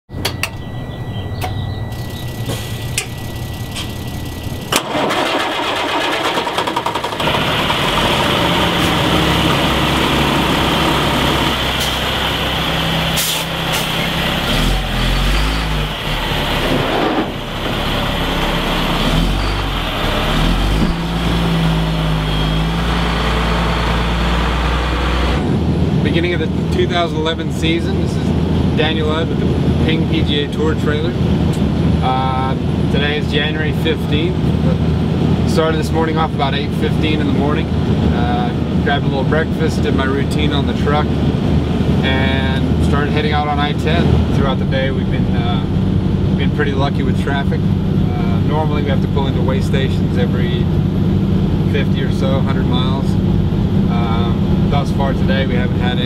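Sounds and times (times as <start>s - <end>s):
high steady beep: 0.1s - 4.7s
clicks: 0.2s - 0.7s
truck engine starting and revving: 0.6s - 56.0s.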